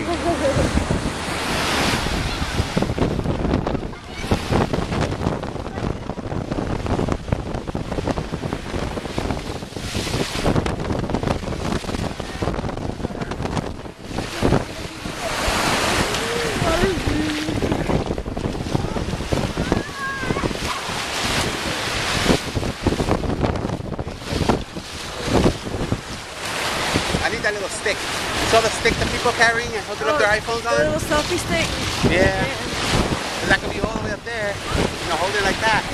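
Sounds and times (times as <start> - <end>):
surf breaking on shore: 0.0 - 35.9
wind buffeting microphone: 0.0 - 35.9.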